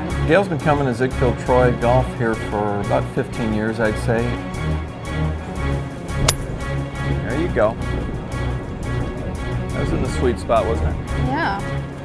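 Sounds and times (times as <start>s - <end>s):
background music: 0.0s - 12.0s
golf driver striking ball: 6.2s - 6.9s.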